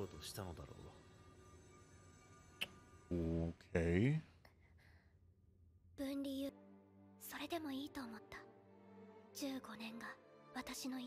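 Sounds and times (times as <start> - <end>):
quiet background music: 0.0 - 11.0
girl speaking: 6.0 - 6.6, 7.2 - 8.5, 9.4 - 11.0.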